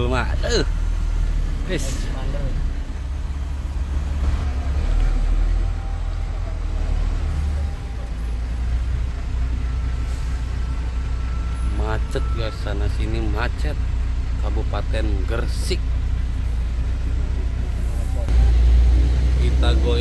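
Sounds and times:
diesel truck engine rumbling: 0.0 - 20.0.

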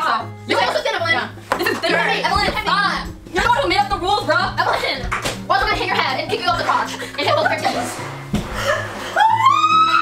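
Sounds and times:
background music: 0.0 - 10.0
woman screaming: 9.2 - 10.0.

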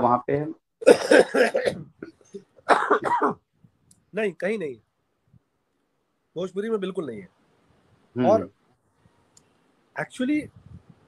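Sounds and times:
man coughing: 0.8 - 3.4.

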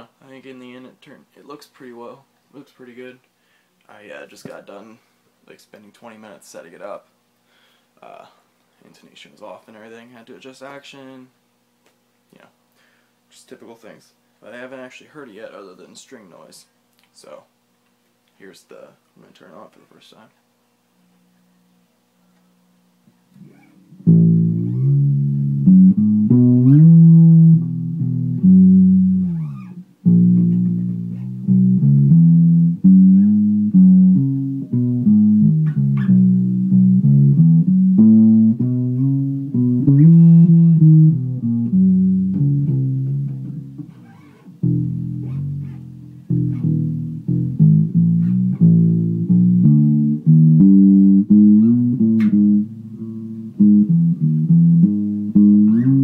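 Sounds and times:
fretless bass guitar sliding notes: 23.4 - 56.0.

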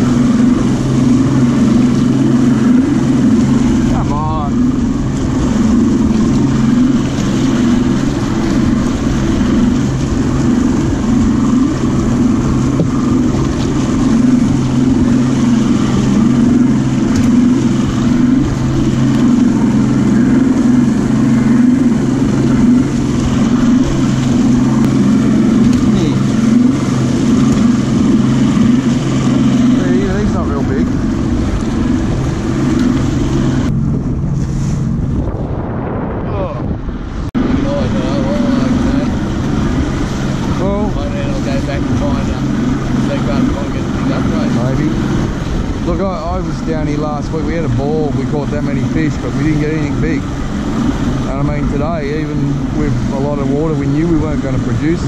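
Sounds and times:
outboard motor running: 0.0 - 55.0
water rushing past hull: 0.0 - 55.0
wind rushing: 0.0 - 55.0.

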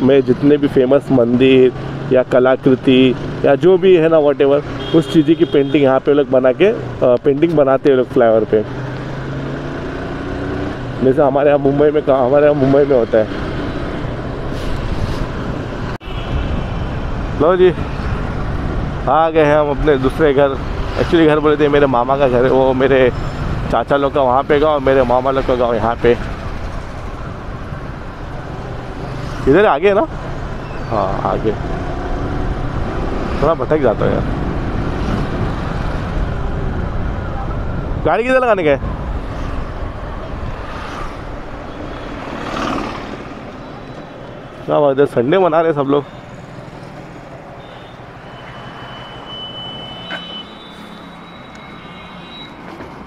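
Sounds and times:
road and air noise: 0.0 - 53.0.

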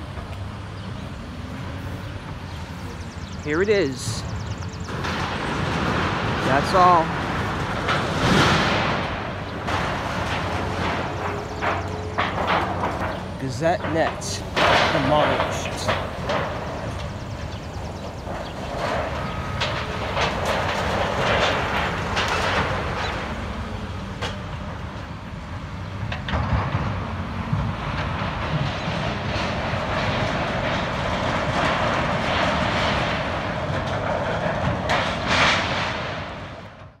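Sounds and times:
hydraulic excavator running: 0.0 - 37.0
scrap metal clanking and crashing: 4.9 - 23.6, 26.1 - 36.9.

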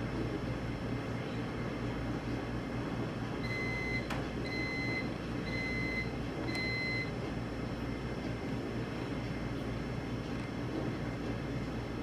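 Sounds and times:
background hum and hiss: 0.0 - 12.0.

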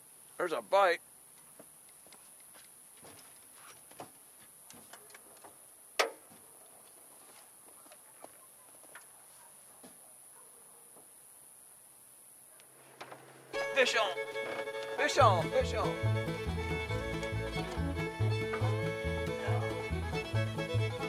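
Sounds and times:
faint steady high hiss: 0.0 - 7.7, 8.9 - 21.0.

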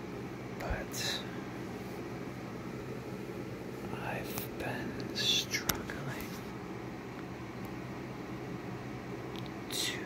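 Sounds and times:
faint low hum: 0.0 - 10.0
person whispering: 0.6 - 1.5, 3.8 - 6.4, 9.7 - 10.0.

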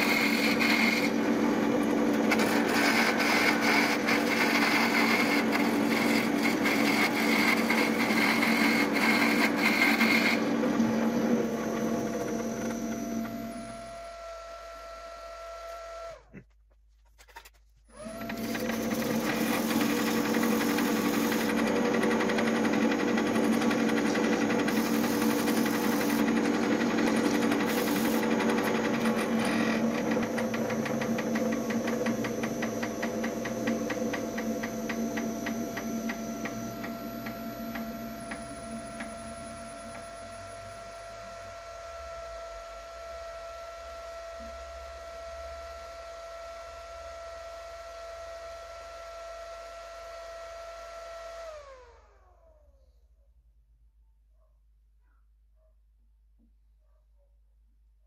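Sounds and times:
lathe motor humming: 0.0 - 16.2, 18.0 - 48.6.

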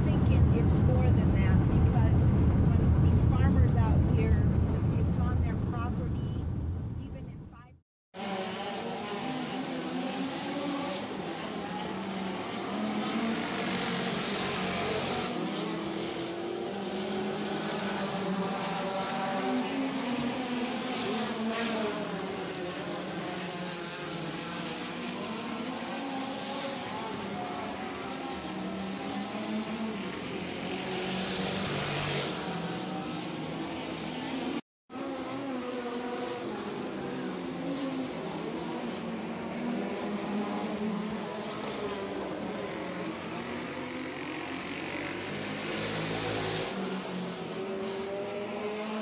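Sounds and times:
race car engines: 0.0 - 49.0.

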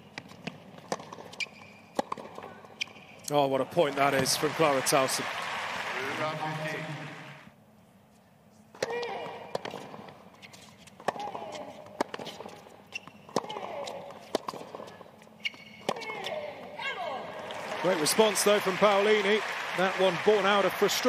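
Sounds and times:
racket striking tennis ball: 0.2 - 3.1, 11.0 - 16.7.

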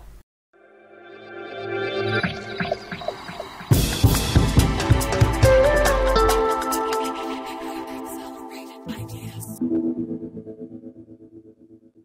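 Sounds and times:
pulsing held music chord: 3.7 - 11.3.

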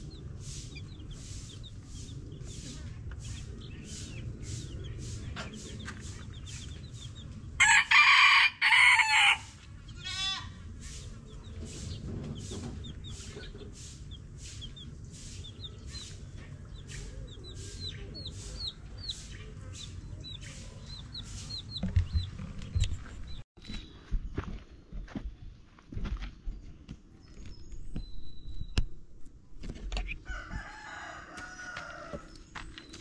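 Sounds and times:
chicks peeping: 0.0 - 24.5, 29.7 - 33.0
rooster crowing: 7.6 - 9.6, 30.2 - 32.3.

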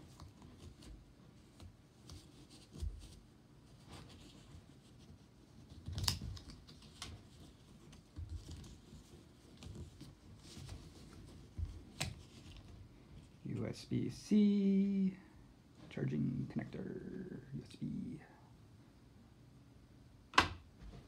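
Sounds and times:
cardboard scraping and rustling: 0.0 - 13.3.

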